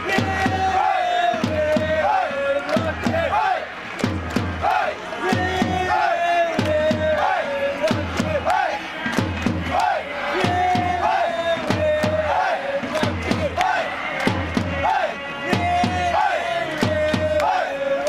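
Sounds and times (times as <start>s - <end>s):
football supporters chanting: 0.0s - 18.0s
steady drumbeat: 0.0s - 18.0s.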